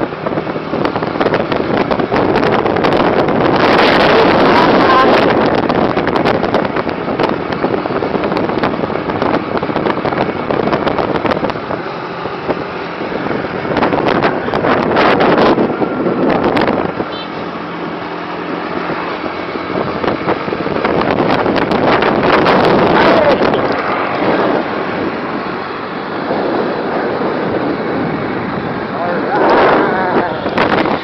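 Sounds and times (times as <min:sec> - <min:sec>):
vehicle road noise: 0:00.0 - 0:31.0
wind buffeting microphone: 0:00.0 - 0:31.0.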